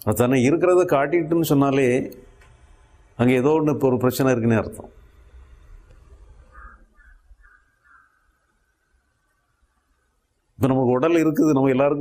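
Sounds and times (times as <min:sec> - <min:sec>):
faint short calls: 0:06.4 - 0:08.5.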